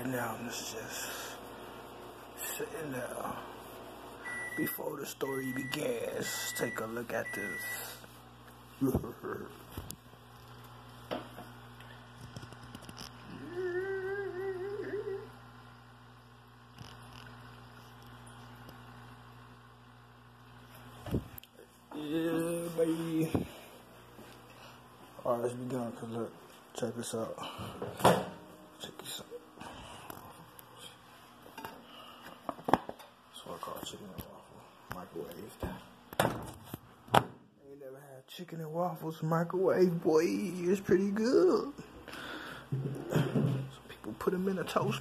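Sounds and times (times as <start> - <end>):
faint low background hum: 0.0 - 45.0
person humming: 8.8 - 9.6, 13.2 - 15.4, 21.9 - 23.4.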